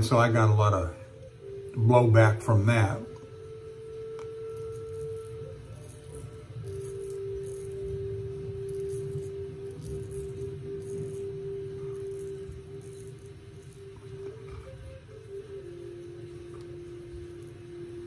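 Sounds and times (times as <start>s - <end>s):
background music with held notes: 0.0s - 18.0s
razor scraping stubble: 4.0s - 15.3s.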